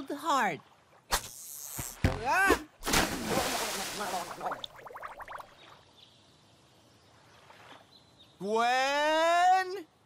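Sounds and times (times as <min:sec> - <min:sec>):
water splash: 0:01.0 - 0:05.6
gurgling bubbles: 0:04.3 - 0:05.6.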